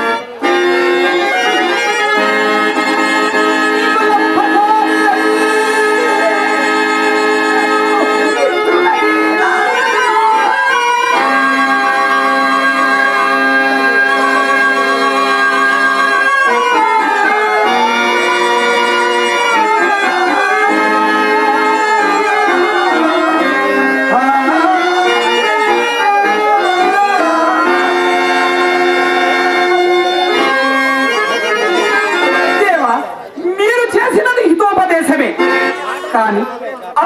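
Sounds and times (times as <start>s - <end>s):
wavering melody line: 0.0s - 33.3s
harmonium reed notes: 0.0s - 36.8s.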